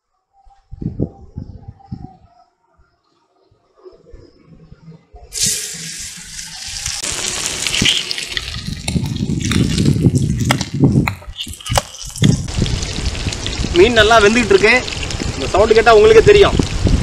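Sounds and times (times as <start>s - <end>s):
fish sizzling in hot oil: 5.3s - 17.0s
oil crackling and popping: 5.3s - 17.0s
low rumbling: 6.8s - 15.6s.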